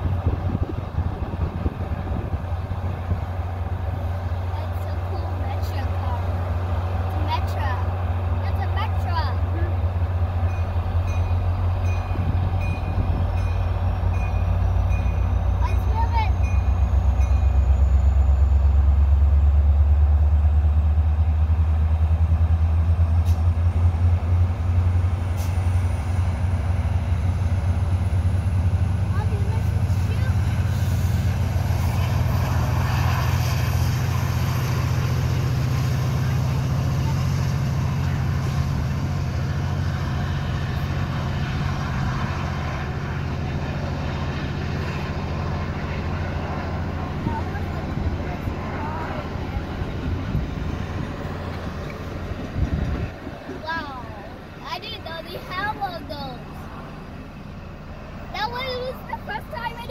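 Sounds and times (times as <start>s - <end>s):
diesel locomotive engine drone: 0.0s - 59.9s.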